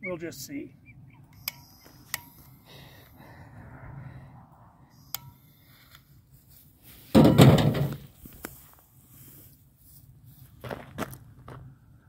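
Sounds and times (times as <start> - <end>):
sharp clicks: 1.3 - 2.6.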